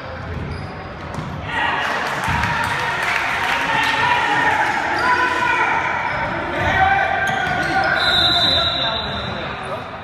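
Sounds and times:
players calling out echoing: 0.2 - 10.0.

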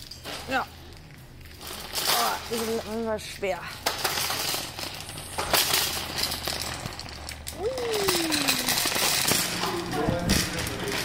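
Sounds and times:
shopping carts rattling: 0.0 - 0.9, 1.6 - 11.0.

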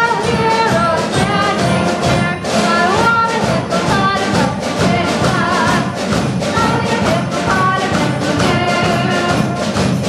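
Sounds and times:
girl singing into microphone: 0.0 - 5.9, 6.6 - 9.5
concert band playing: 0.0 - 10.0.

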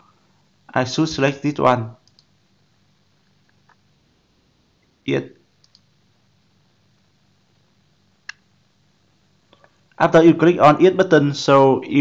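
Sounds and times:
computer mouse click: 2.0 - 2.3, 5.6 - 5.9
faint ticks: 2.0 - 2.3, 5.6 - 5.9.

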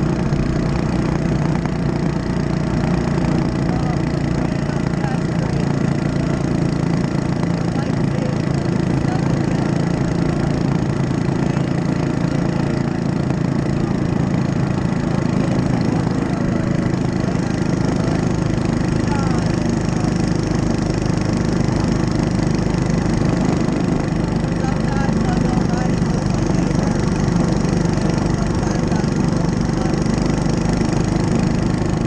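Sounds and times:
small bike engine running: 0.0 - 32.0.

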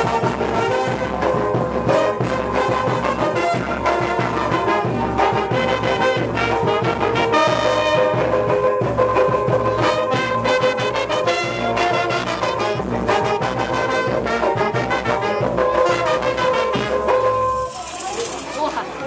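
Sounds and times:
crowd chatter: 0.0 - 19.0
street brass band playing: 0.0 - 19.0.

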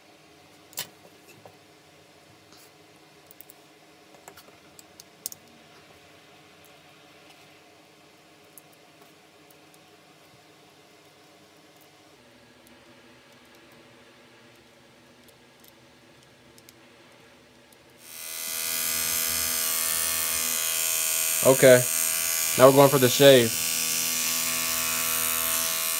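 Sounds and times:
hair trimmer humming: 18.0 - 25.9.

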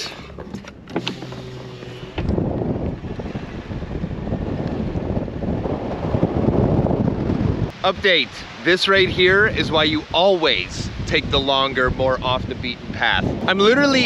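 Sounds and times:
tyres on dirt: 0.0 - 3.4
car engine humming: 0.0 - 8.8
wind rushing over microphone: 1.0 - 14.0.

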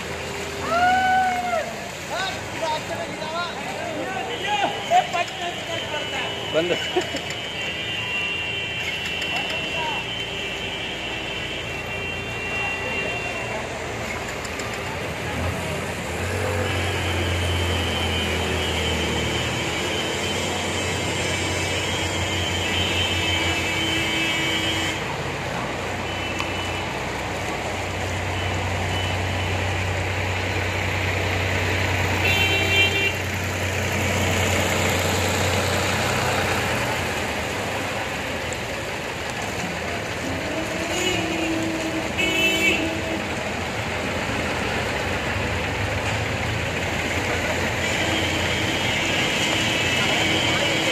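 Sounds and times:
water washing: 0.0 - 23.7
vehicle engines running: 25.0 - 42.2, 42.8 - 50.9.

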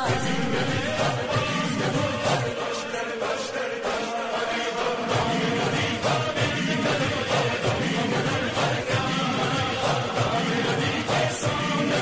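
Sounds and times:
chanted vocal backing: 0.0 - 12.0.

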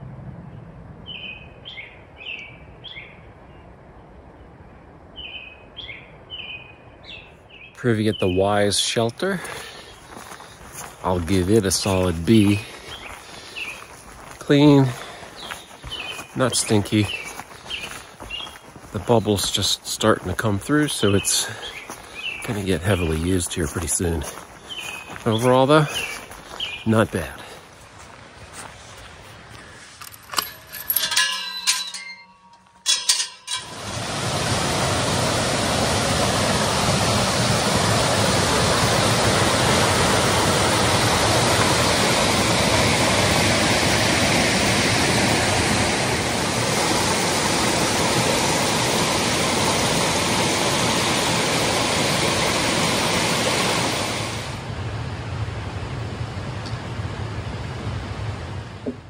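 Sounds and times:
creek water rushing over rocks: 8.5 - 29.8, 32.9 - 54.9.

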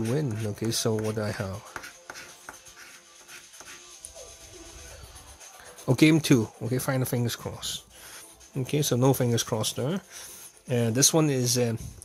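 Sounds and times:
faint background music: 0.0 - 12.0
coin scraping a scratchcard: 1.2 - 5.9.

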